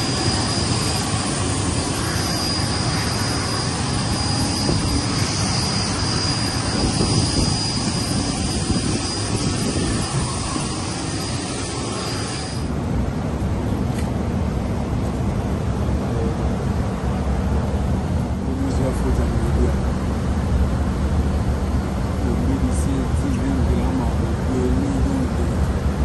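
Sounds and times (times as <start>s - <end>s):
jet engine rush with whine: 0.0s - 26.0s
dull low cabin hum: 12.7s - 26.0s.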